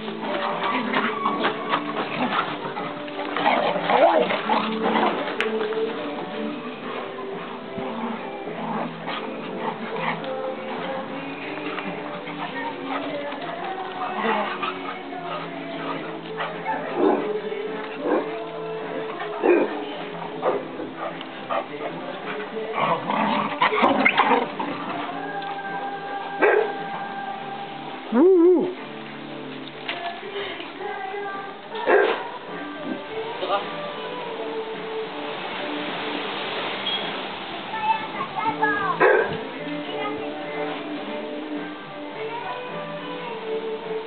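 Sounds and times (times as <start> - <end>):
dogs making sounds: 0.0 - 27.2, 31.8 - 33.1, 38.9 - 40.3
background music: 0.0 - 44.0
dog barking: 26.4 - 26.8, 31.9 - 32.2, 39.0 - 39.4.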